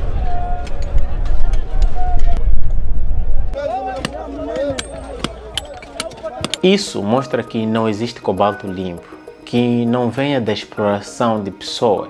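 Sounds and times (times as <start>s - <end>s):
heavy low rumble: 0.0s - 3.6s
men shouting: 3.6s - 9.2s.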